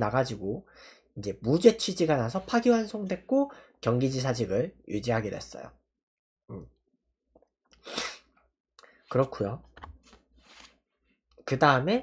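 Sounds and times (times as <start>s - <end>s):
sharp burst of breath: 7.8s - 8.3s.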